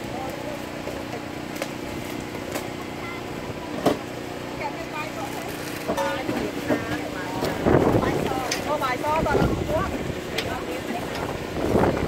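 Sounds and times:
distant voices talking: 0.0s - 12.0s.

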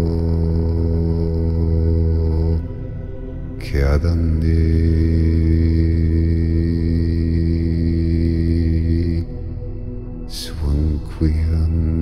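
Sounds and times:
deep voice chanting mantra: 0.0s - 12.0s
meditation music drone: 0.0s - 12.0s.

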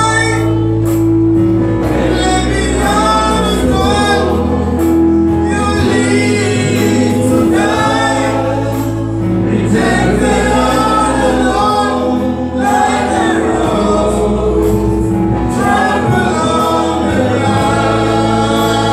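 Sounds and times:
group singing gospel song: 0.0s - 18.9s
loud music with low notes: 0.0s - 18.9s.

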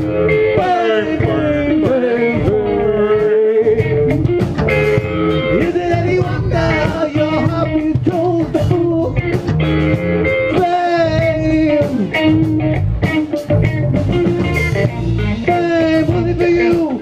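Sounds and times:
bass guitar: 0.0s - 17.0s
drums: 0.0s - 17.0s
electric guitar lead: 0.0s - 17.0s.

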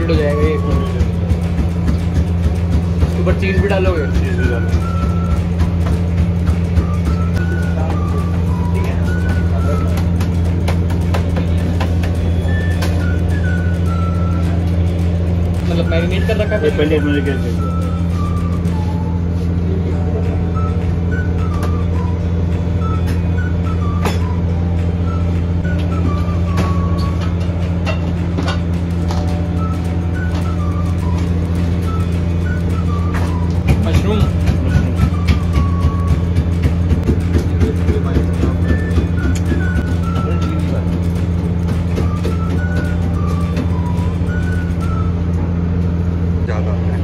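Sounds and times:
faint simple melody: 0.0s - 46.5s
low mechanical hum: 0.0s - 47.0s.

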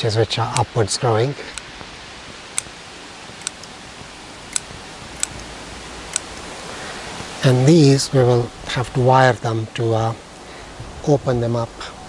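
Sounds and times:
steady hiss: 0.0s - 12.0s
pruning scissors snipping twigs: 2.5s - 3.8s, 4.5s - 5.5s, 6.1s - 6.5s.

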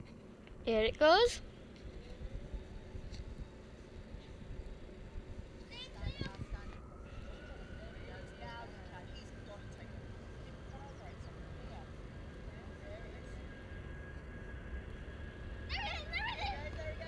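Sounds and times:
distant aircraft engine rumble: 0.0s - 17.0s
faint steady whine: 0.0s - 17.0s
voices chattering: 5.6s - 17.0s.

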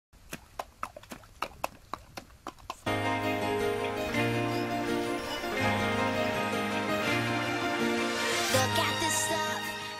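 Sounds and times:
hooves splashing in shallow water: 0.2s - 2.9s.

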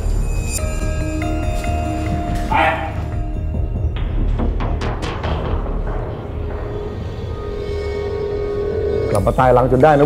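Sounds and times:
tense drama score music: 0.0s - 10.0s.

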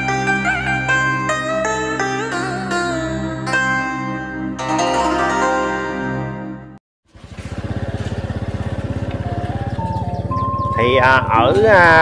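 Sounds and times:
small motorbike engine running: 7.1s - 12.0s.

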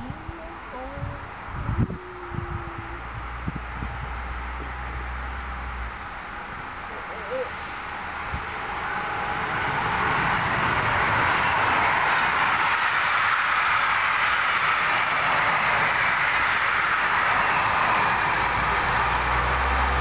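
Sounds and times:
train passing close by: 0.0s - 20.0s.

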